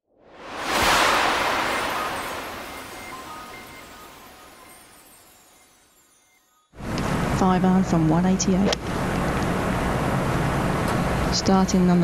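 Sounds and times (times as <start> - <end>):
rushing whoosh: 0.2 - 4.5
faint chime-like notes: 1.0 - 6.8.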